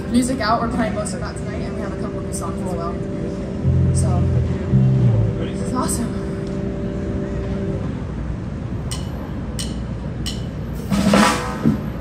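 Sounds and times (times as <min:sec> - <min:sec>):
band playing: 0:01.8 - 0:08.2, 0:10.8 - 0:12.0.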